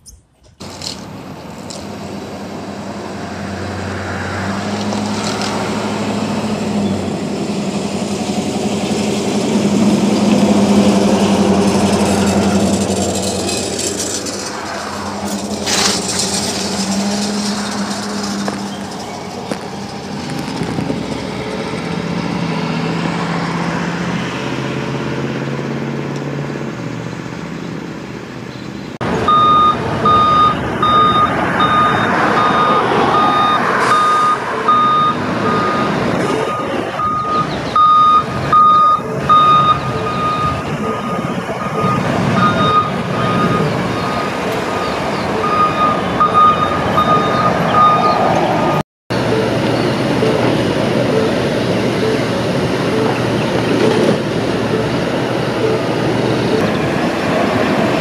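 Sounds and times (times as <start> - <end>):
street noise: 0.0 - 58.0
vehicle engine and road noise: 0.0 - 58.0
truck reversing alarm beeping: 29.0 - 56.7.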